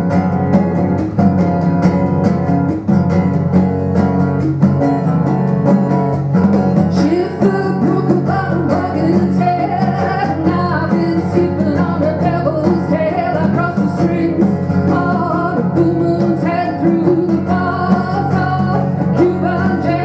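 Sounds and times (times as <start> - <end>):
congas: 0.0 - 20.0
electric bass guitar: 0.0 - 20.0
strummed acoustic guitar: 0.0 - 20.0
person singing: 6.9 - 20.0.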